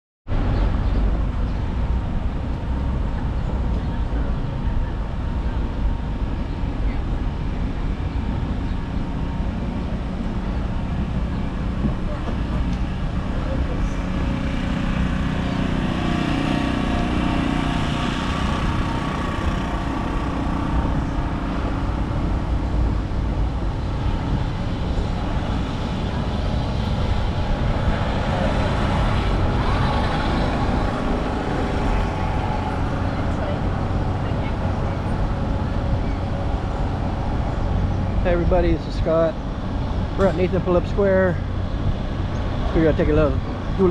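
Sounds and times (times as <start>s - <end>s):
heavy vehicle passing: 0.3s - 43.9s
traffic drone: 0.3s - 43.9s.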